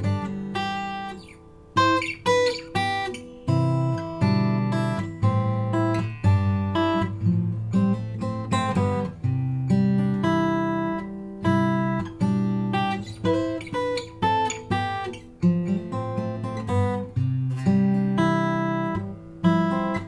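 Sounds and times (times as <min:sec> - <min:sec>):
acoustic guitar playing: 0:00.0 - 0:20.0.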